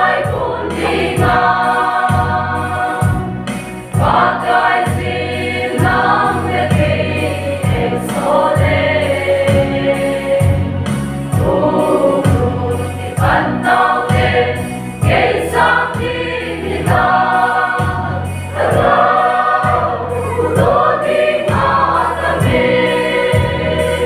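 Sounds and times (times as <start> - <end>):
choir singing gospel song: 0.0 - 24.0
steady low beat: 0.0 - 24.0.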